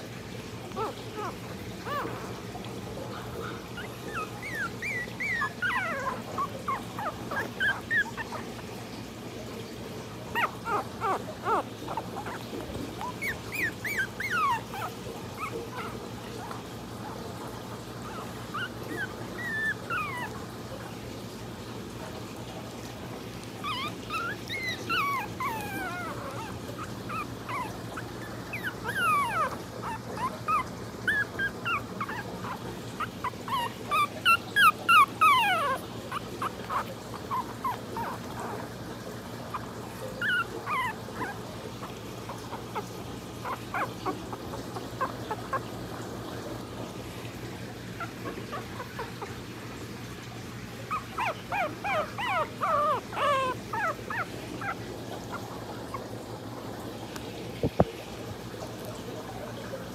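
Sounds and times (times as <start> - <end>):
puppies crying: 0.4 - 9.1, 9.8 - 20.8, 23.4 - 56.6.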